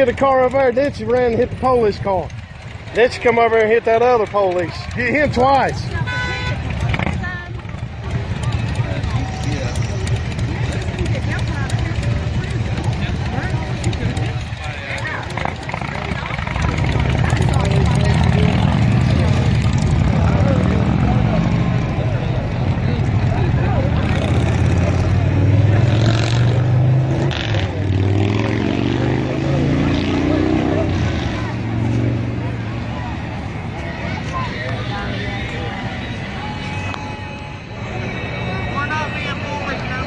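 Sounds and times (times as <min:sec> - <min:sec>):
faint voices: 0:00.0 - 0:40.0
vehicle engine rumbling: 0:00.0 - 0:40.0.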